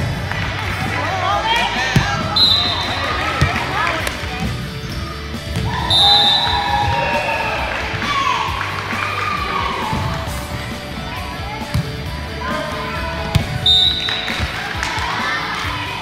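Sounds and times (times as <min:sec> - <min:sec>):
voices calling and cheering: 0:00.0 - 0:16.0
volleyball being hit: 0:01.8 - 0:04.6, 0:13.2 - 0:15.2
referee whistle blasts: 0:02.4 - 0:03.2, 0:05.9 - 0:06.7, 0:13.6 - 0:14.4.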